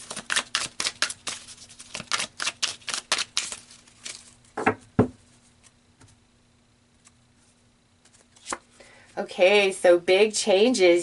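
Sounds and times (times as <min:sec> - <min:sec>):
cards being shuffled: 0:00.0 - 0:04.5, 0:07.0 - 0:08.8.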